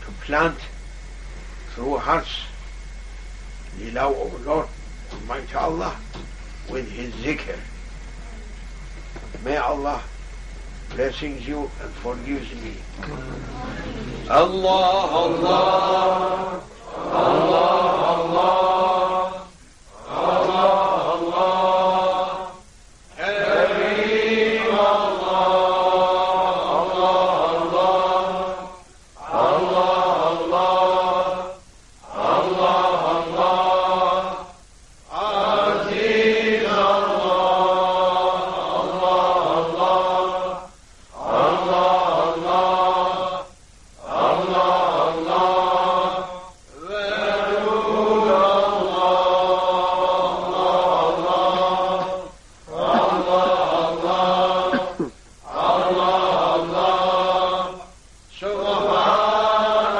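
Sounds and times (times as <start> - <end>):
voice chanting held phrases: 52.0 - 53.7, 54.6 - 55.2.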